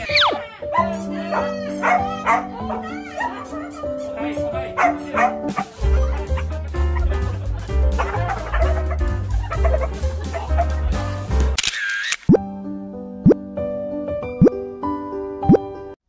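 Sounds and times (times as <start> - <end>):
dog yipping and barking: 0.0 - 3.4, 4.8 - 5.7
background music: 0.0 - 11.7, 12.3 - 16.0
music with heavy steady beat: 5.4 - 11.6.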